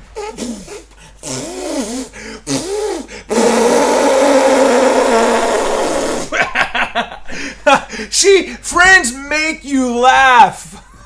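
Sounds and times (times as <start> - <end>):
fart noise: 0.2 - 6.4
short vocal sounds: 0.2 - 6.4.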